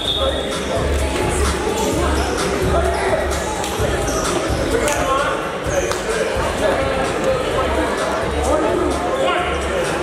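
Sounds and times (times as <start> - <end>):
indistinct voices echoing: 0.0 - 10.0.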